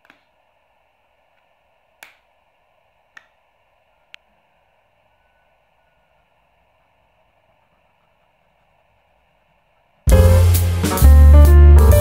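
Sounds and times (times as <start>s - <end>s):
steady low hiss: 0.0s - 12.0s
faint sharp clicks: 1.4s - 2.3s.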